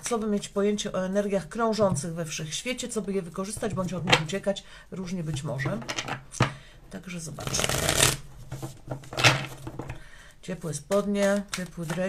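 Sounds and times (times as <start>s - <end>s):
cards being shuffled: 7.4s - 9.9s, 10.9s - 12.0s.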